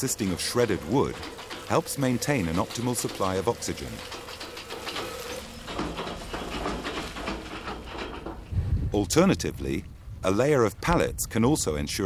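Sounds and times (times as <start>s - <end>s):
wood waste pouring and clattering: 0.0s - 8.5s
wheel loader engine running: 0.0s - 8.6s.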